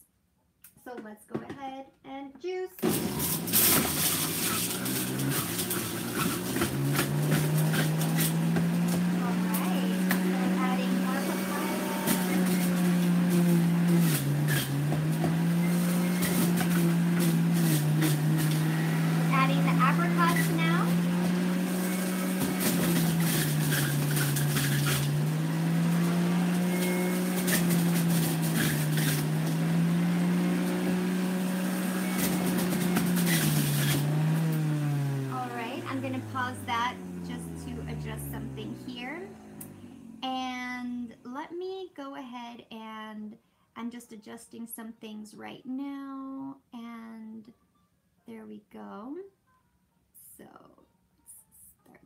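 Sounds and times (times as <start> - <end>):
juicer motor running: 2.8 - 41.2.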